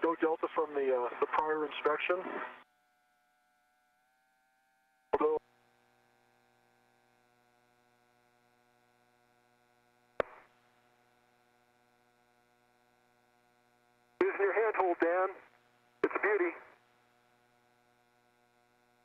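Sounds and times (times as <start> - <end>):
clipped radio voice: 5.2 - 5.4, 14.2 - 15.4, 16.0 - 16.8.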